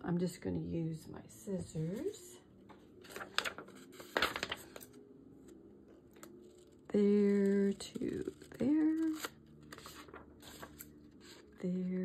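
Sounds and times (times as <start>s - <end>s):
card paper rustling: 3.0s - 5.0s, 6.2s - 11.5s.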